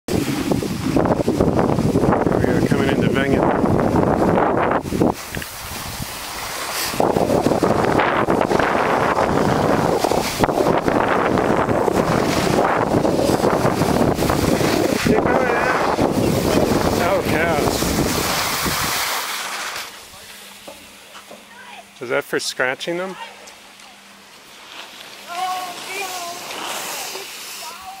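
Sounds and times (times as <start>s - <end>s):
wind buffeting microphone: 0.1s - 19.1s
skis scraping over snow: 0.1s - 20.5s, 24.3s - 28.0s.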